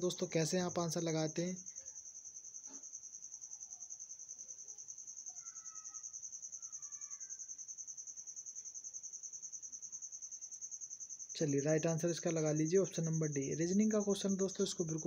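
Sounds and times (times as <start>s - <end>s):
cricket trilling: 0.0s - 15.0s.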